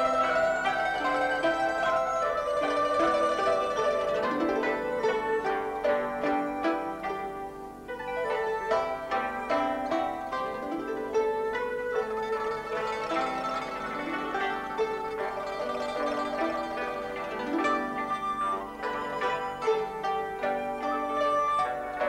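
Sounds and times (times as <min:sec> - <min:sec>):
plucked string melody: 0:00.0 - 0:22.0.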